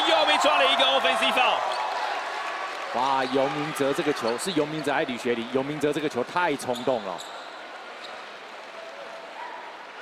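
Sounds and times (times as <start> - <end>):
basketball game broadcast: 0.0 - 10.0.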